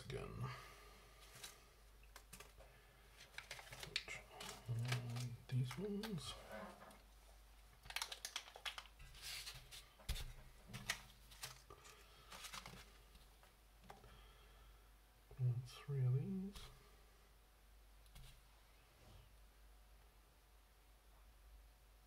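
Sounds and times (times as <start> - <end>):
plastic bags rustling: 1.2 - 7.1, 7.7 - 13.4.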